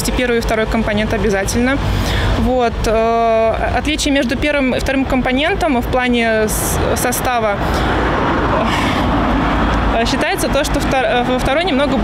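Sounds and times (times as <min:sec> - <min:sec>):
vehicle passing close by: 0:06.4 - 0:12.0.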